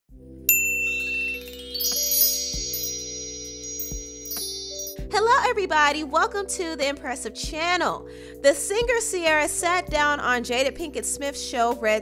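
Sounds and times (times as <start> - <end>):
shimmering chime and sparkle tones: 0.5 - 5.1
held low chord: 0.5 - 5.2.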